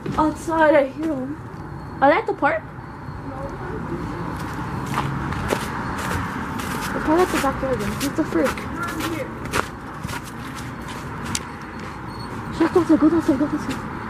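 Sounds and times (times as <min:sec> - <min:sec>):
footsteps: 0:04.3 - 0:13.0.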